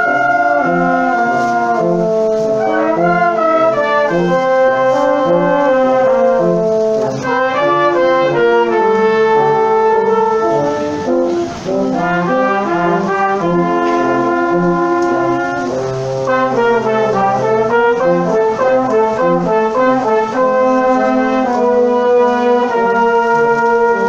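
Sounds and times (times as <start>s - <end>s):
brass quintet playing chords: 0.0s - 24.0s.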